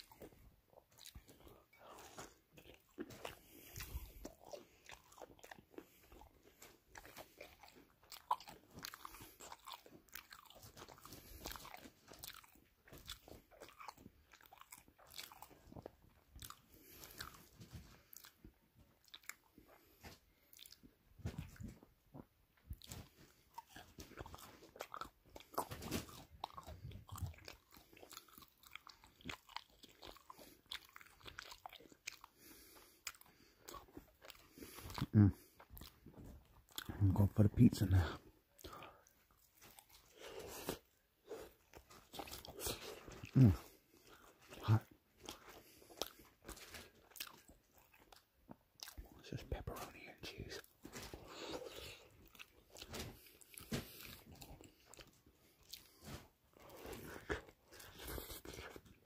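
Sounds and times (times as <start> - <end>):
person chewing and crunching food: 0.0 - 59.0.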